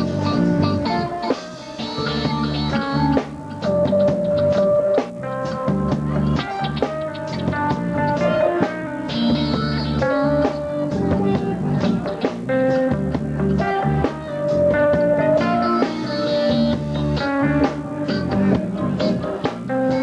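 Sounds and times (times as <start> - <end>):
electric guitar melody: 0.0 - 20.0
reggae band playing: 0.0 - 20.0.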